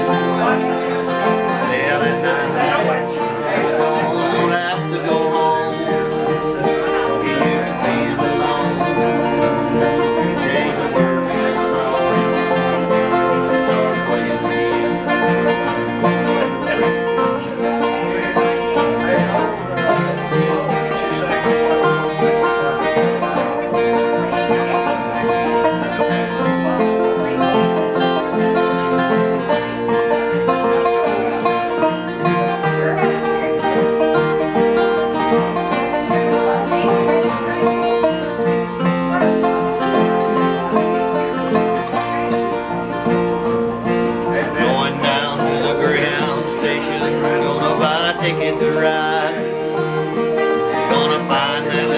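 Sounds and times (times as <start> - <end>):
acoustic guitars strumming: 0.0 - 51.9
banjo picking: 0.0 - 51.9.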